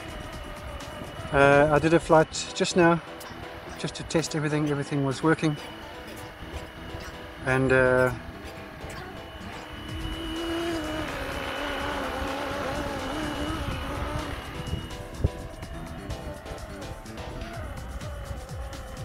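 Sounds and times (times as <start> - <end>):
wind buffeting microphone: 0.0 - 2.3, 8.0 - 19.0
model helicopter rotor and motor whine: 0.0 - 19.0.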